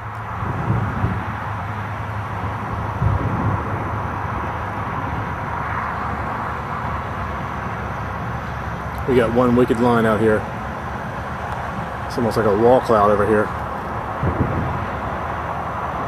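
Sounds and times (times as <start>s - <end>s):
storm rumble and rush: 0.0s - 16.0s.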